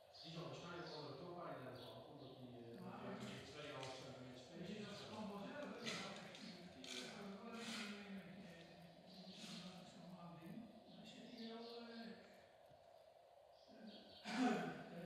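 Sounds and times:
quiet voices murmuring: 0:00.0 - 0:15.0.

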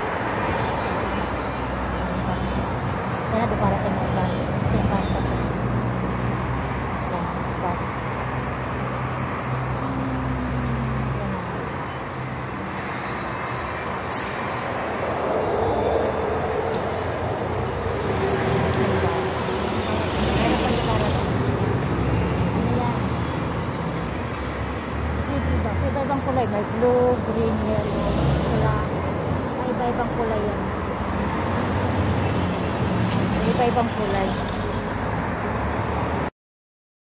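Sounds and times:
street traffic: 0:00.0 - 0:36.3
air brake hiss: 0:14.1 - 0:14.6.

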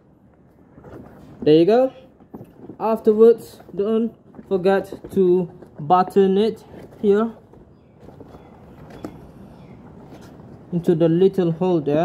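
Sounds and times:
rubber gas mask handling noise: 0:00.0 - 0:10.7.

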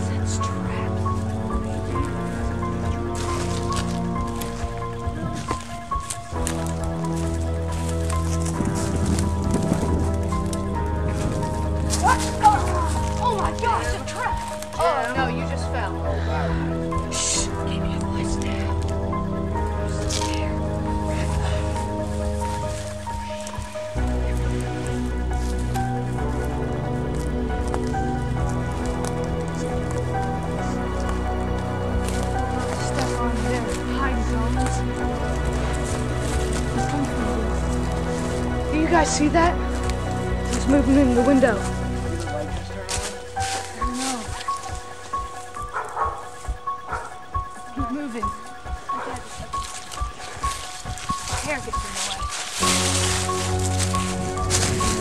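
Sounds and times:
music with held notes: 0:00.0 - 0:55.0
person speaking: 0:40.5 - 0:45.0.

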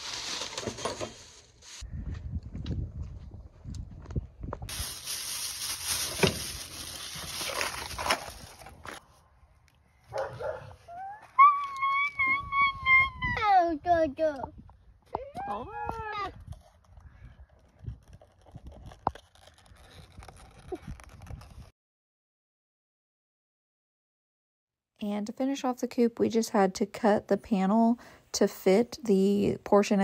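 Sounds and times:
plastic packaging rustling: 0:04.7 - 0:09.0.

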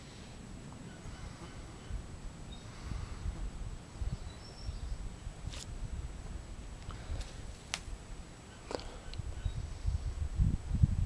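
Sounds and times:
wind rumbling on microphone: 0:00.0 - 0:11.0
bird chirps: 0:04.1 - 0:05.0.

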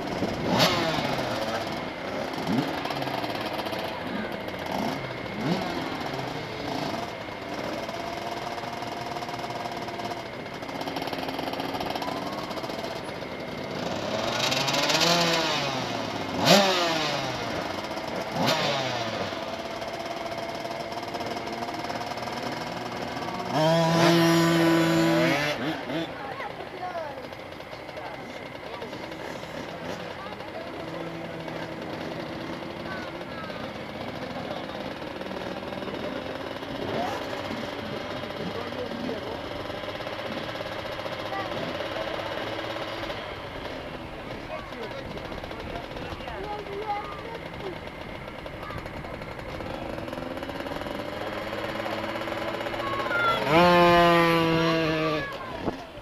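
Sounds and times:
minibike engines idling: 0:00.0 - 0:56.0
minibike revving hard: 0:00.0 - 0:56.0.

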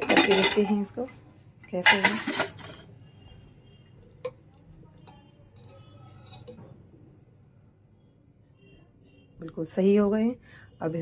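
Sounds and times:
metal spoon scraping in pot: 0:05.0 - 0:06.8.

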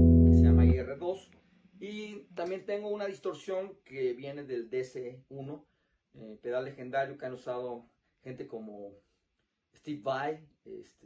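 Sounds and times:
overdriven electric guitar chord: 0:00.0 - 0:00.8
man speaking: 0:00.0 - 0:05.6, 0:06.2 - 0:09.0, 0:09.8 - 0:11.0.

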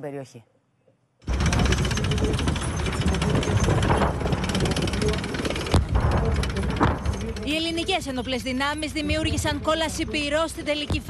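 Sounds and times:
rapid gunfire: 0:01.3 - 0:07.6.

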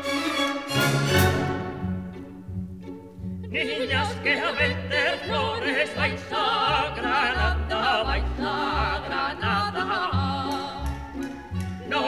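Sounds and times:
low orchestral notes: 0:00.0 - 0:04.6
operatic voice singing with vibrato: 0:03.4 - 0:12.0.

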